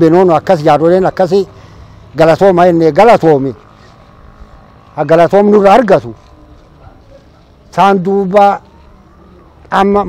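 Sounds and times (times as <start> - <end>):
man speaking: 0.0 - 3.6, 4.9 - 6.2, 7.2 - 8.7, 9.6 - 10.0
faint background noise: 0.0 - 10.0.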